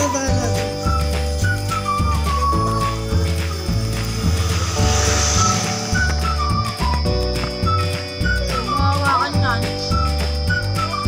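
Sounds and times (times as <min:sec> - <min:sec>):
background music with bass pulse: 0:00.1 - 0:11.0.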